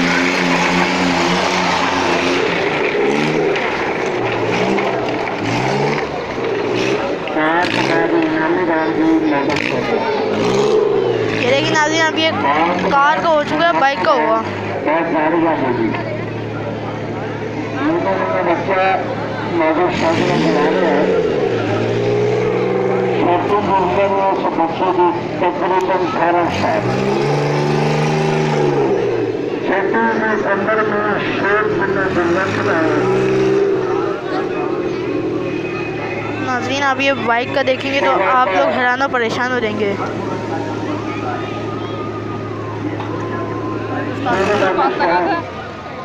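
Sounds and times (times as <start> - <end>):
car engine humming: 0.0 - 46.0
loud voices: 0.0 - 46.0
person speaking: 11.3 - 14.6, 36.4 - 41.2.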